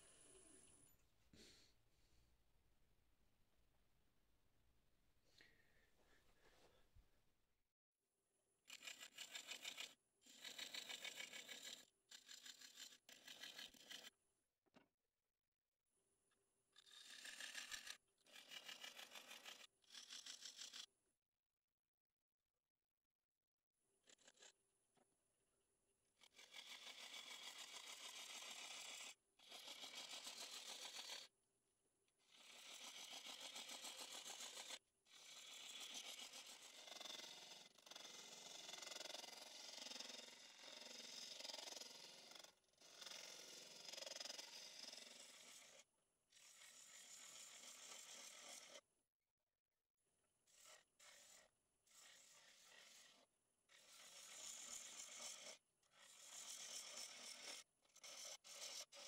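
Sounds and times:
gouge scraping wood on a lathe: 8.8 - 14.1, 26.3 - 31.3, 32.3 - 45.8, 46.4 - 48.8, 50.5 - 57.6.

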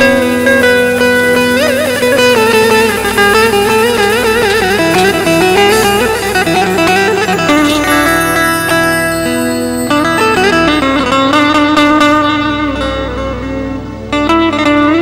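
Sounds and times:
drums: 0.0 - 11.4
synthesizer: 0.0 - 12.9
electric saz melody: 0.0 - 15.0.

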